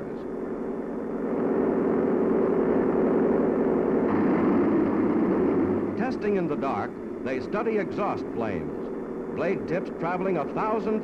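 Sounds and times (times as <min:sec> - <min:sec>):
airplane propeller droning: 0:00.0 - 0:11.0.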